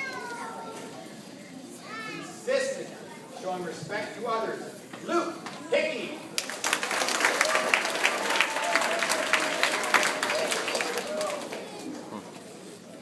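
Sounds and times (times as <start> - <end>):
audience clapping: 6.4 - 11.9.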